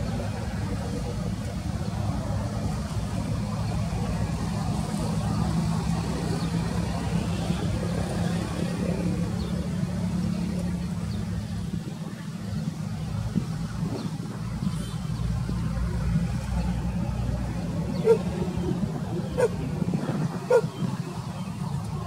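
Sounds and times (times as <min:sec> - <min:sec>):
engine humming: 0:00.0 - 0:22.0.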